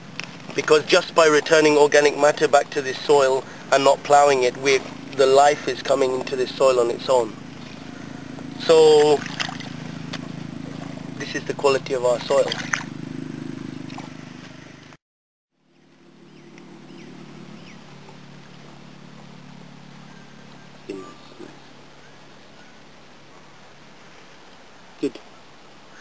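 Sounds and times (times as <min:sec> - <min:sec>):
steady low hum: 0:00.0 - 0:15.0, 0:15.6 - 0:26.0
faint high chirps: 0:20.0 - 0:22.8.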